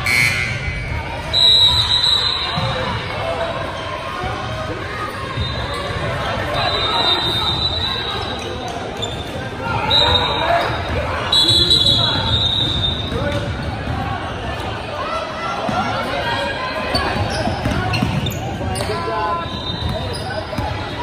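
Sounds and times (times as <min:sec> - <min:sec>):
voices echoing: 0:00.0 - 0:21.0.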